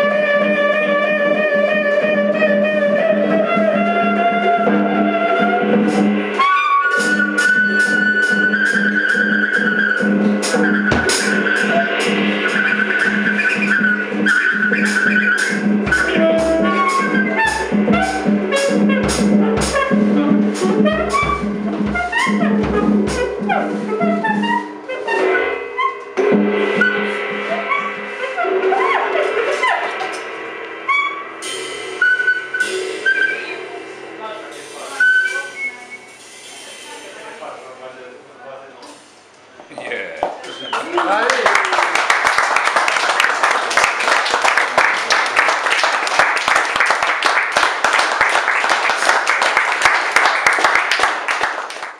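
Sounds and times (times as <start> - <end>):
tenor saxophone: 0.0 - 26.2
drums and cymbals: 0.0 - 38.0, 38.9 - 39.5
bass drum thumps: 10.7 - 12.0, 17.4 - 23.4.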